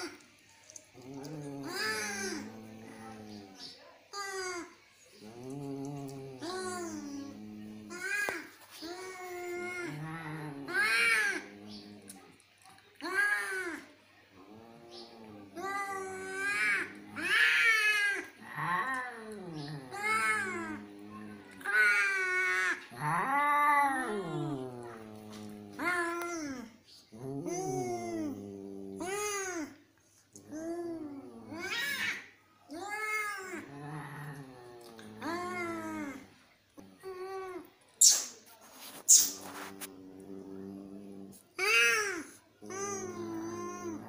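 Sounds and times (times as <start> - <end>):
cats yowling: 1.0 - 12.2, 13.0 - 29.8, 30.4 - 36.2, 39.4 - 44.0.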